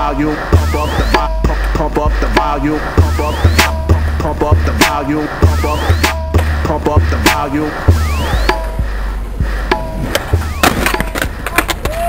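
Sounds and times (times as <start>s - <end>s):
skateboard clattering on pavement: 10.0s - 12.0s.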